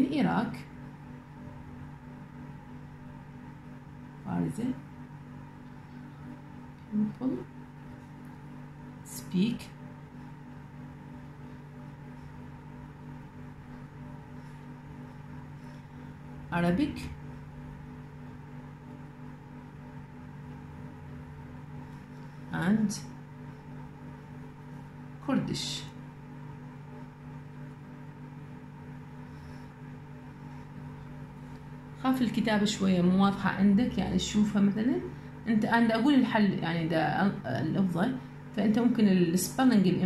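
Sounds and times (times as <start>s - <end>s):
low electrical hum: 0.0s - 40.0s.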